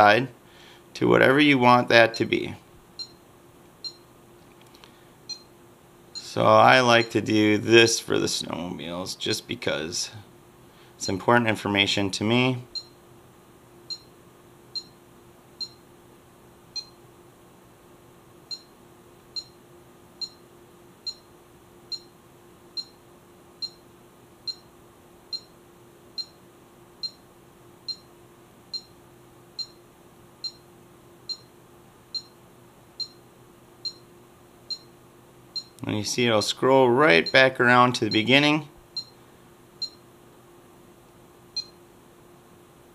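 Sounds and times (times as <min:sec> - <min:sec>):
handheld device beeping: 0:39.0 - 0:39.2.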